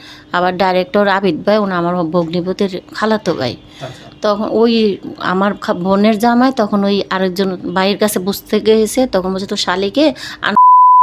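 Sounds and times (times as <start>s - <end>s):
woman talking: 0.3s - 10.6s
censor bleep: 10.6s - 11.0s.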